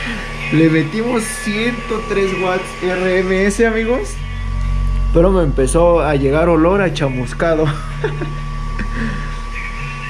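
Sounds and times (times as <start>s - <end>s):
subwoofer playing low bass tone: 0.0s - 10.0s.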